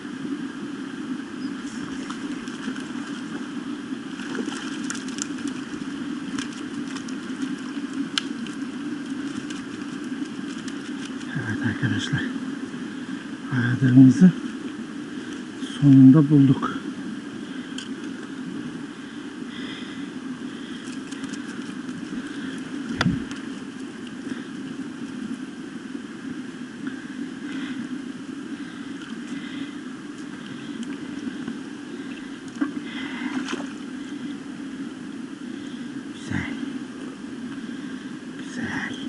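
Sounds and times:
stream flowing over stones: 1.6s - 12.2s
faint clicks: 6.3s - 11.3s.

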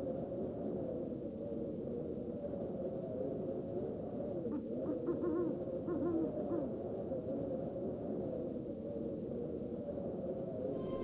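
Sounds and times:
low steady background drone: 5.5s - 11.0s
owl hooting: 10.8s - 11.0s.

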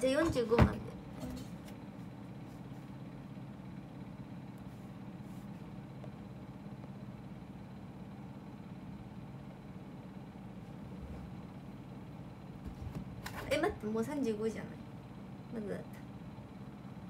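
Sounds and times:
low background hum: 0.0s - 17.0s.

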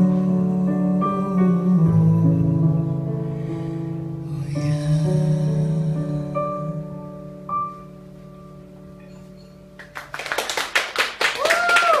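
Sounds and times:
people clapping: 9.8s - 12.0s.

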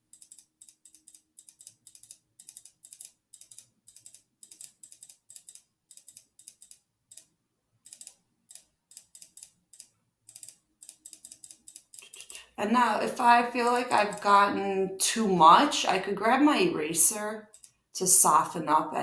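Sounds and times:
computer mouse clicking: 0.0s - 12.5s, 17.4s - 17.9s.

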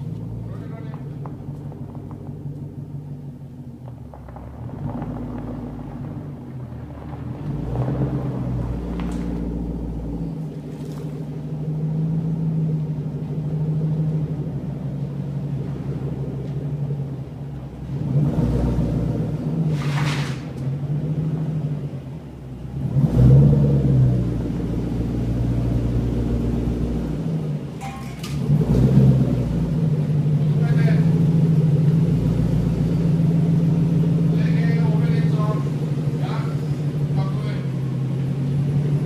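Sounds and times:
car engine running at low revs: 0.0s - 39.0s
deep exhaust rumble: 0.0s - 39.0s.

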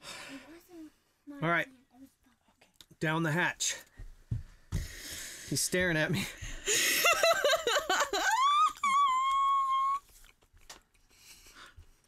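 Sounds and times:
woman laughing and squealing: 7.0s - 10.1s.

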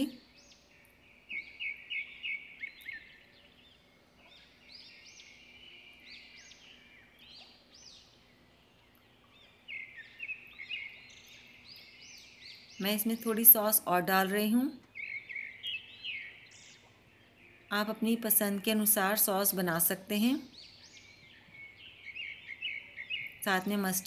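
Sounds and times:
small birds chirping: 0.0s - 24.0s.

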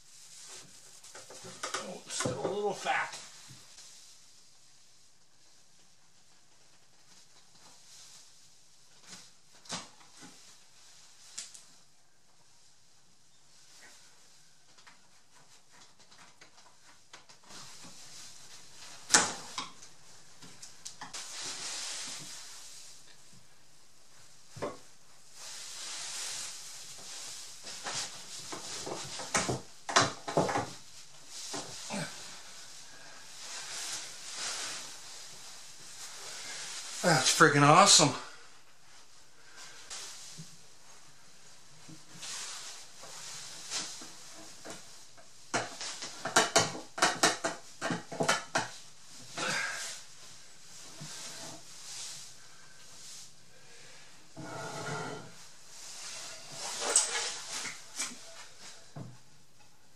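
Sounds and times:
wood scraping on wood: 54.4s - 55.4s.

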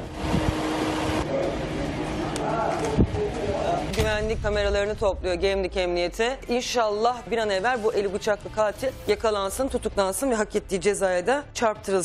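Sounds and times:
steady hum: 0.0s - 6.3s.

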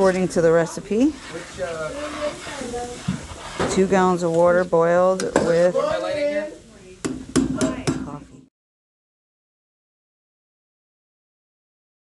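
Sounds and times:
background voices talking: 0.0s - 8.5s.

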